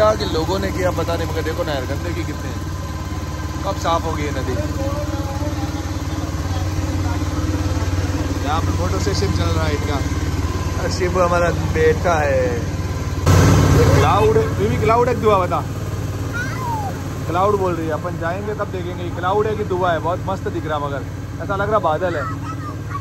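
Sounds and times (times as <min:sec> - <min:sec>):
people talking: 0:00.0 - 0:02.6, 0:03.6 - 0:10.1, 0:10.8 - 0:12.7, 0:13.7 - 0:15.7, 0:16.4 - 0:23.0
boat engine humming: 0:00.0 - 0:23.0.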